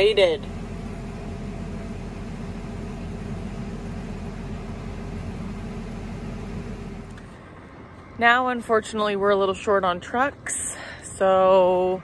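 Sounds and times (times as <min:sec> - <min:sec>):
harvester running heard from cab: 0:00.0 - 0:07.5.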